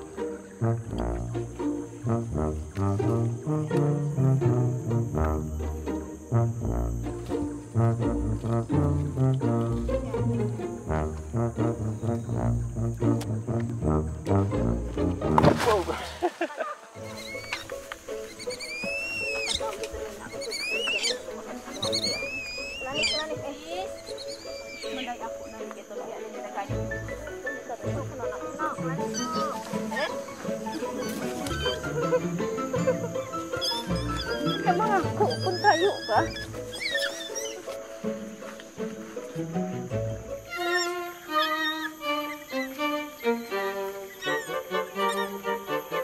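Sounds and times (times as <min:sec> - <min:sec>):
background music: 0:00.0 - 0:46.0
young orangutans squeaky calls: 0:17.0 - 0:25.7, 0:29.0 - 0:37.8, 0:40.4 - 0:45.6.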